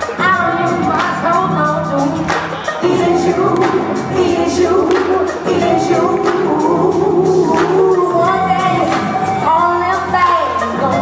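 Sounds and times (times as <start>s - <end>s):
live band music: 0.0s - 11.0s
singing holding long notes: 0.0s - 11.0s.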